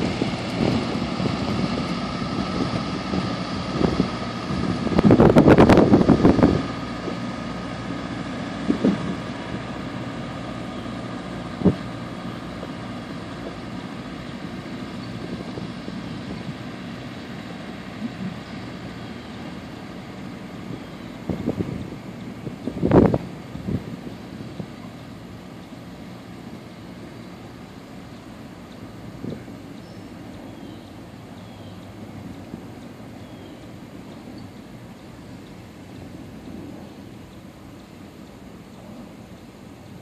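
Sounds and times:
distant locomotive engine: 0.0 - 40.0.

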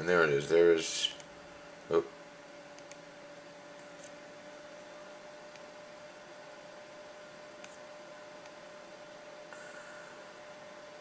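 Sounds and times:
electrical hum: 0.0 - 11.0
faint click: 2.7 - 3.0.

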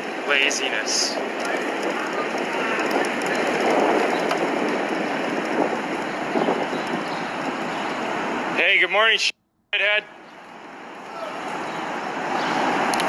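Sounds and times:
bike rolling on street: 0.0 - 9.0, 10.1 - 13.0
traffic noise: 0.0 - 13.0.

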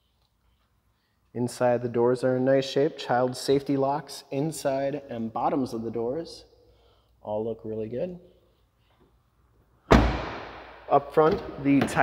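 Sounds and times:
car door slam: 9.9 - 10.6.

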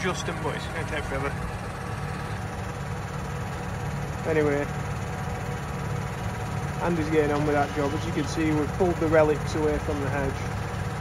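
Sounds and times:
tractor engine running at low revs: 0.0 - 11.0.

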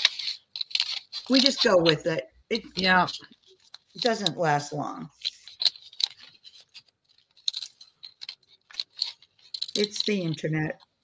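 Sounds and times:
scissors snipping paper: 0.0 - 4.5, 5.1 - 10.8.

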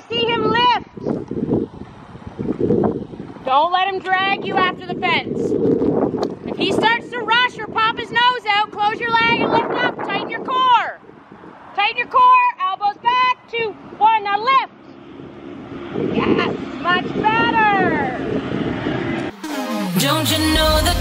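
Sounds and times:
woman shouting: 0.0 - 1.0, 6.5 - 11.0, 11.8 - 14.7, 16.1 - 18.3
wind rumbling on microphone: 0.0 - 19.3.

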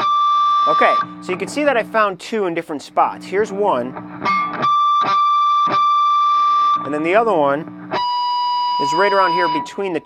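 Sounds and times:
distorted electric guitar harmonic: 0.0 - 10.0.

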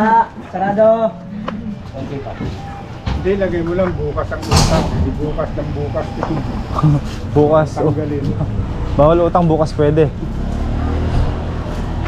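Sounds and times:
vehicle engine running: 1.4 - 12.0.

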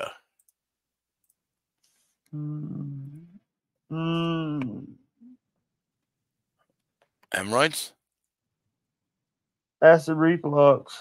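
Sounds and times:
man speaking: 0.0 - 0.2, 7.3 - 8.0.

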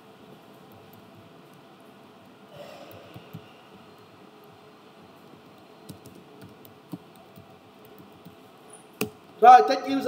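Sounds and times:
keyboard keystrokes: 5.8 - 8.4.

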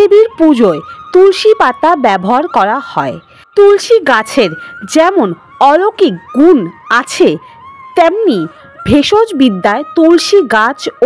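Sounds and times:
faint background music tone: 0.0 - 11.0.

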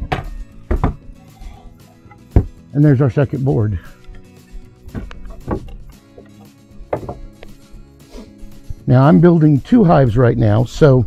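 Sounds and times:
wooden boards knocking on table: 0.0 - 1.1, 4.9 - 5.8, 6.9 - 7.4
background music: 0.0 - 11.0.

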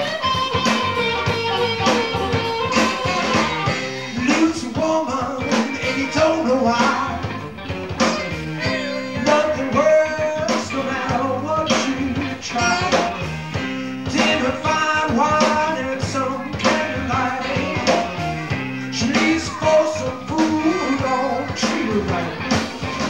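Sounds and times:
guitar: 0.0 - 23.0
live blues band playing: 0.0 - 23.0.

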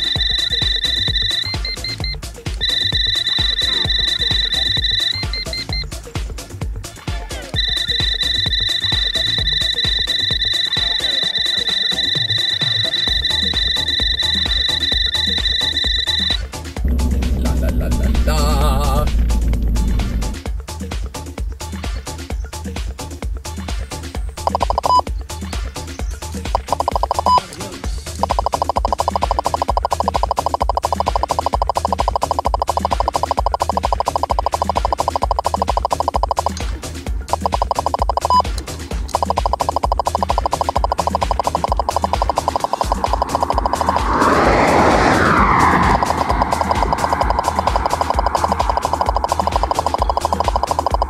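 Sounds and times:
laser speed gun beeping: 0.0 - 5.9, 7.6 - 16.4, 24.4 - 25.0, 26.5 - 27.4, 28.1 - 36.6, 37.3 - 38.5, 39.1 - 44.2, 45.8 - 51.0
background music with low beat: 0.0 - 51.0
vehicle rushing past: 16.8 - 20.4, 41.0 - 50.7.

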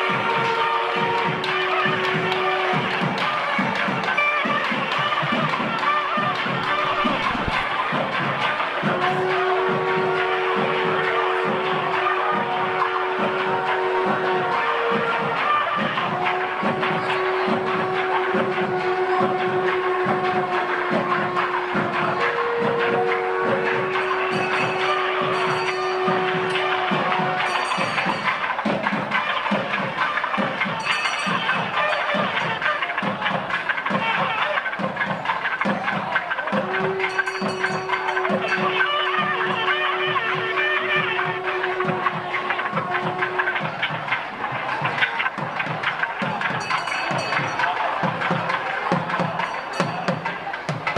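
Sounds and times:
drum strokes: 0.0 - 50.9.

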